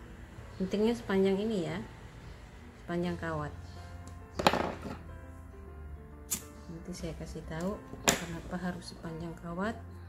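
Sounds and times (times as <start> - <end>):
background music: 0.0 - 10.0
scissors snipping yarn: 6.3 - 6.6.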